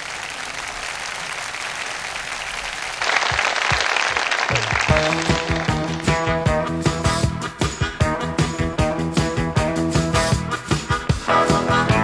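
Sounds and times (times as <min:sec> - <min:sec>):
audience applauding: 0:00.0 - 0:06.5
band playing: 0:04.5 - 0:12.0
low drum beats: 0:04.6 - 0:12.0.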